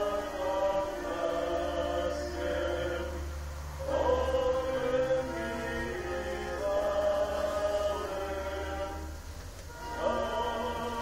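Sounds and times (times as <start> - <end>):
choir and congregation singing hymn: 0.0 - 11.0.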